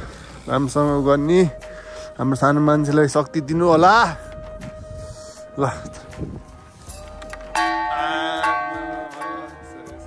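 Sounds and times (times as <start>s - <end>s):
large brass bell ringing: 7.6s - 10.0s.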